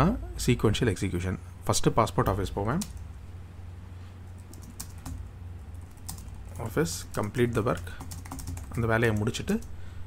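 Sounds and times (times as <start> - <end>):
steady low hum: 0.0 - 10.0
keyboard typing: 4.4 - 9.7.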